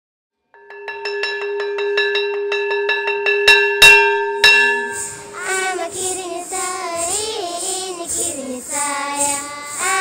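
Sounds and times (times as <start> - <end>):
metal bell ringing rapidly: 0.6 - 10.0.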